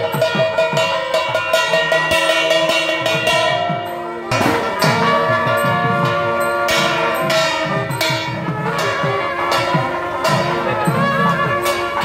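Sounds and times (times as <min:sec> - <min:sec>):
bells ringing: 0:00.0 - 0:12.0
drum strokes: 0:00.0 - 0:12.0
held wind instrument tones: 0:00.0 - 0:12.0.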